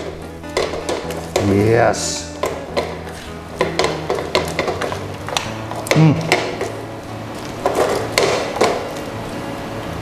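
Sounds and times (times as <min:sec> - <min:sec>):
spatula knocking pan side: 0:00.0 - 0:06.8, 0:07.6 - 0:08.9.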